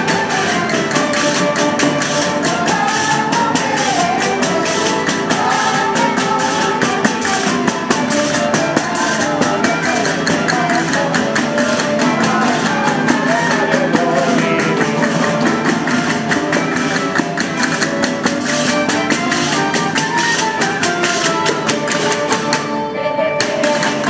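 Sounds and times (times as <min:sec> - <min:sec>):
jingling frame drums: 0:00.0 - 0:22.8
strummed acoustic guitars: 0:00.0 - 0:24.0
violins: 0:00.0 - 0:24.0.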